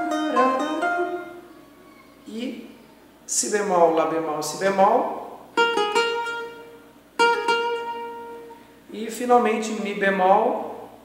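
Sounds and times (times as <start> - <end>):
cavaquinho phrase: 0.0 - 5.5, 8.9 - 11.0.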